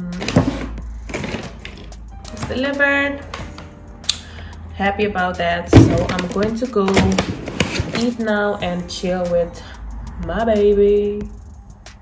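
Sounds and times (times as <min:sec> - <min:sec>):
paper bag rustling: 0:00.2 - 0:02.7, 0:05.8 - 0:08.3.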